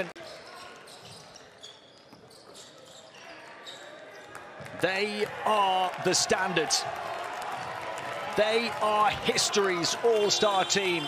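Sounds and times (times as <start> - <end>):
murmur of indoor hall: 0.0 - 11.0
shoe squeaks on court: 0.2 - 4.4.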